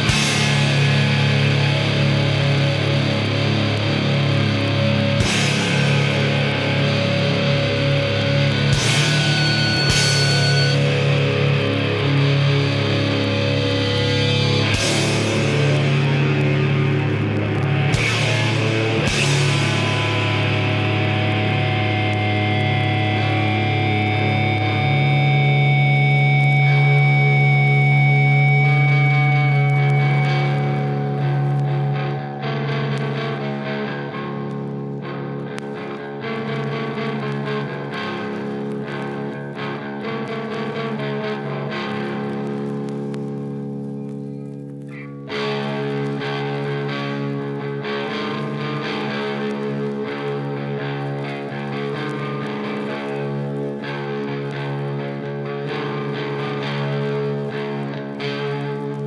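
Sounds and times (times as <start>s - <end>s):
distorted guitar and bass chords: 0.0s - 59.0s.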